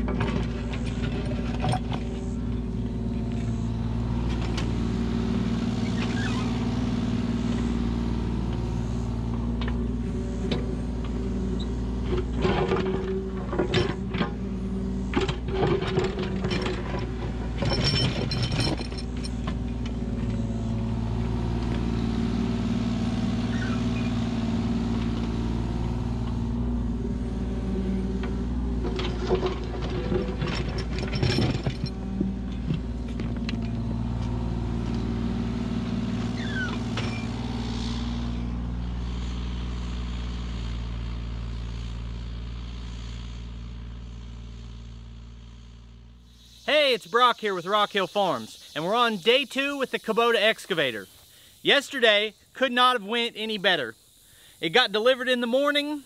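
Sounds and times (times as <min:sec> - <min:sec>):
excavator diesel engine running: 0:00.0 - 0:50.8.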